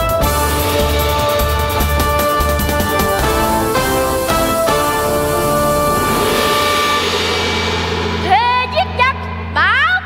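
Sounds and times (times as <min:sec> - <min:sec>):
dramatic stage music: 0:00.0 - 0:10.0
low drone: 0:00.6 - 0:09.6.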